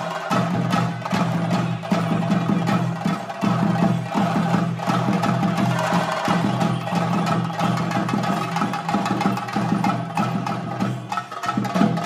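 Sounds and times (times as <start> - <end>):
drums beaten fast with sticks: 0.0 - 12.0.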